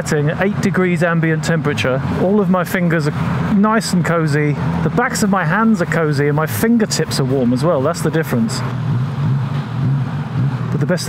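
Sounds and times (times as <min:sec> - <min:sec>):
person speaking: 0:00.0 - 0:08.7
motorcycle engine running: 0:00.0 - 0:11.0.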